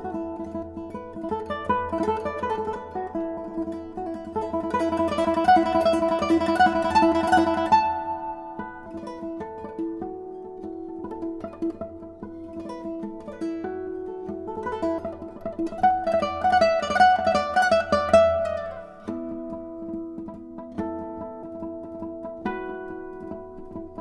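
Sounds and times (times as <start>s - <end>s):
plucked string music: 0.0s - 24.0s.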